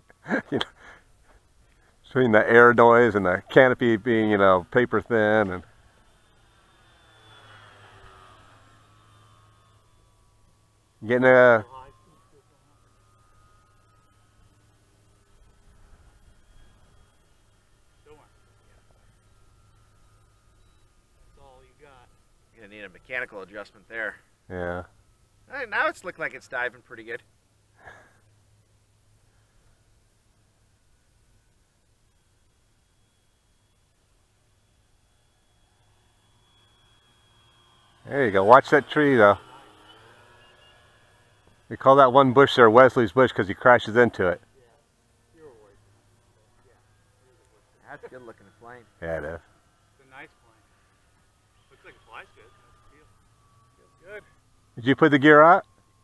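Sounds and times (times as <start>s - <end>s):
faint low hum: 0.0s - 56.0s
model plane motor whine: 0.0s - 56.0s
faint high tone: 51.6s - 55.7s.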